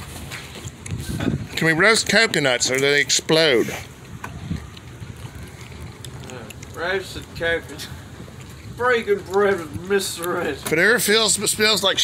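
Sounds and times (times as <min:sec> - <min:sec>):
low outdoor background rumble: 0:00.0 - 0:12.0.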